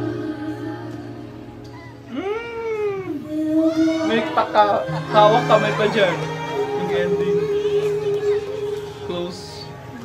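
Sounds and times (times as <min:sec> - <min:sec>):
steady held note: 0:02.1 - 0:09.1.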